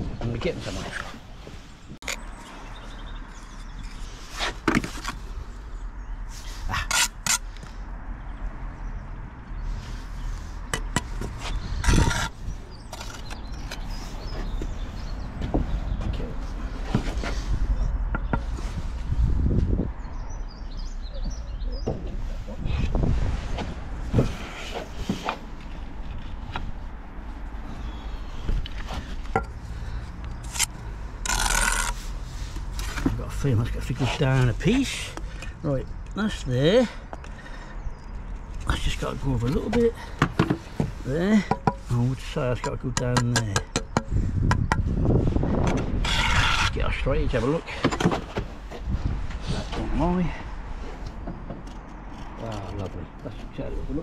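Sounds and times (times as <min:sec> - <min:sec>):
trowel scraping mortar: 0:06.6 - 0:07.5, 0:10.8 - 0:14.0, 0:30.4 - 0:32.2, 0:45.9 - 0:47.0
brick taps and knocks: 0:40.2 - 0:41.8, 0:42.6 - 0:44.8.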